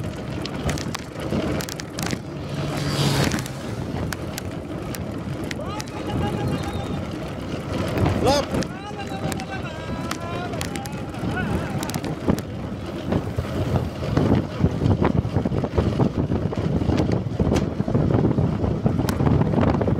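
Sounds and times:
wind rushing over microphone: 0.0 - 19.9
tyre and road noise hiss: 0.7 - 5.0.

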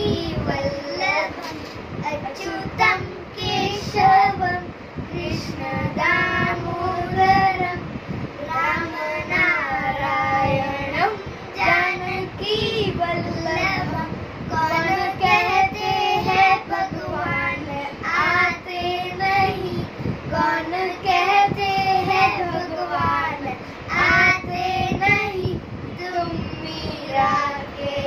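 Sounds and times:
child singing unaccompanied: 0.0 - 28.0.

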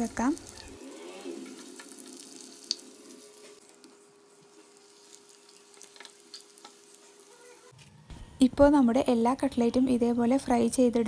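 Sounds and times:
food sizzling in hot oil: 0.0 - 7.7.

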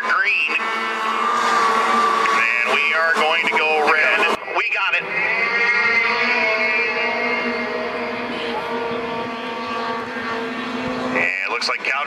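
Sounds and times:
snowmobile engines accelerating: 0.0 - 12.0.

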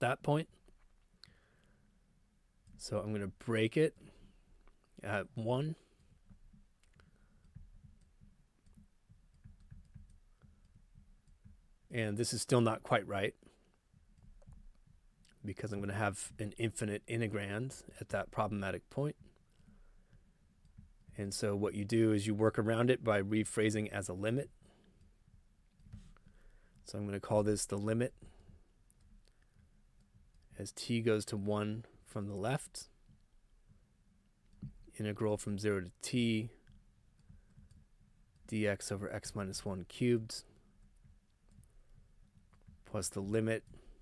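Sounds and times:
person speaking: 2.8 - 4.0, 5.0 - 5.9, 11.9 - 13.4, 15.3 - 19.2, 21.2 - 24.6, 26.8 - 28.4, 30.5 - 33.0, 34.9 - 36.6, 38.5 - 40.5, 42.8 - 43.9
stylus tapping on drawing tablet: 7.5 - 11.6.

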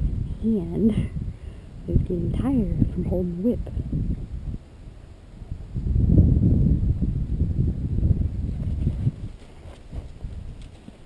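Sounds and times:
horse moving on sand: 8.5 - 11.0.

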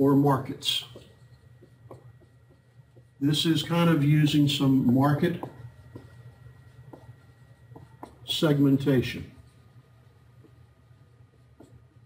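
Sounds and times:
low room hum: 0.0 - 12.0
marker writing on a whiteboard: 0.0 - 12.0.

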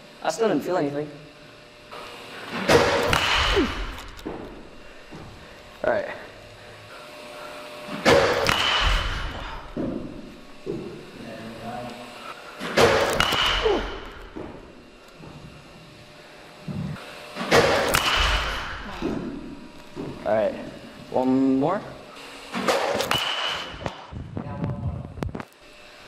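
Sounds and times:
bat cracking against baseball: 2.5 - 5.2, 7.9 - 11.2, 12.6 - 15.2, 17.3 - 20.2, 22.5 - 24.1.

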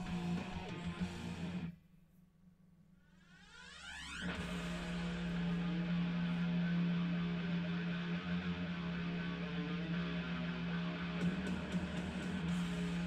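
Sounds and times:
background music: 0.0 - 1.7, 4.2 - 13.0.

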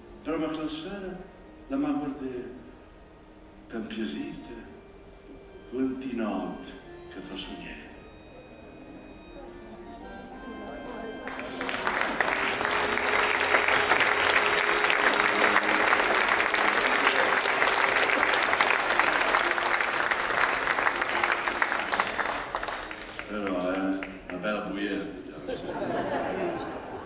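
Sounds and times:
accordion long notes: 0.0 - 23.3
audience applauding: 10.8 - 24.4.

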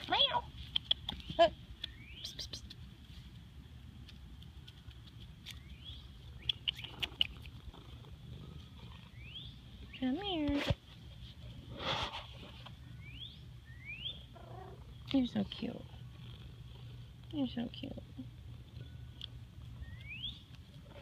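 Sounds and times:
small birds chirping: 0.2 - 2.9, 4.4 - 10.5, 12.7 - 21.0
rising whistled bird calls: 13.0 - 14.3, 19.8 - 20.4.

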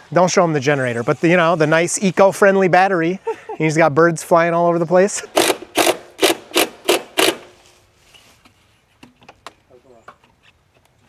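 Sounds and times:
person laughing breathily: 3.2 - 3.6.

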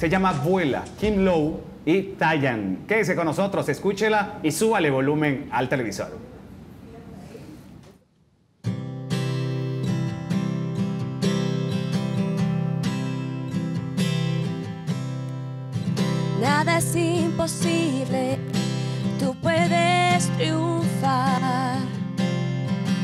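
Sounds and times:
acoustic guitar strumming: 8.6 - 23.0
woman singing: 16.4 - 22.0.

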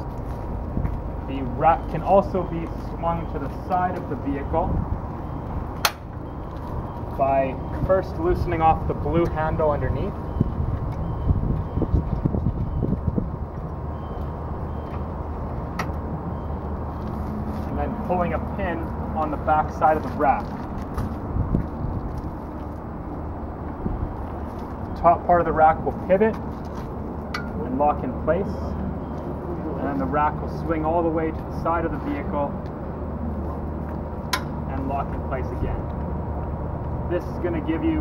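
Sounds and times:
low outdoor background noise: 0.0 - 38.0.

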